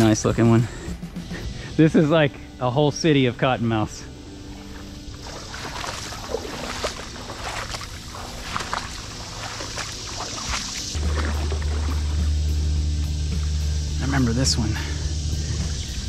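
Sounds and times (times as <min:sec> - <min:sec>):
background music: 0:00.0 - 0:16.0
deep steady bass note: 0:02.4 - 0:16.0
water splashing: 0:04.3 - 0:16.0.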